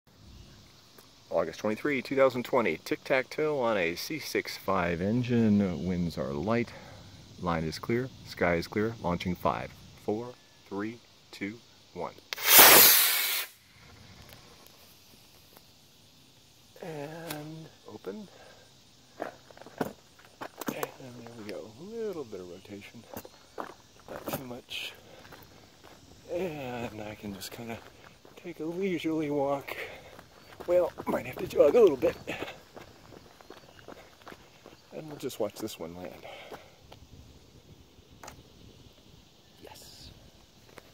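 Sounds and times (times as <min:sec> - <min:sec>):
rocket motor rushing hiss: 0:12.3 - 0:15.6
faint jogging footsteps: 0:22.9 - 0:26.1, 0:26.9 - 0:37.1.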